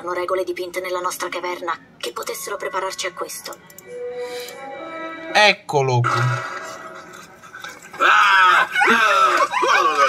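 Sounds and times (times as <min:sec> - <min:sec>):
cartoon shrieks and yells: 0:08.0 - 0:09.4.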